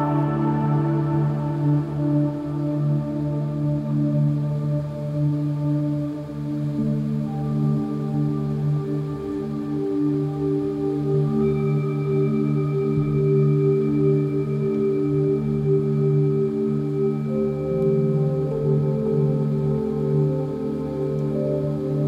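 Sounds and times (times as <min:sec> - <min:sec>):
ambient meditation music: 0:00.0 - 0:22.0.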